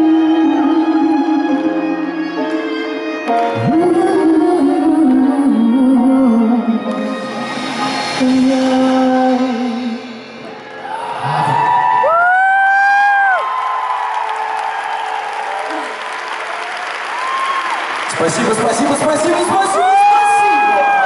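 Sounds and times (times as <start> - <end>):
crowd cheering and applauding: 10.7 - 21.0.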